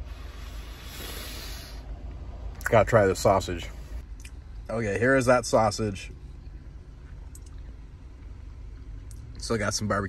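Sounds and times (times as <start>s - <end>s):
even hiss: 0.0s - 1.9s
car cabin low rumble: 0.0s - 10.0s.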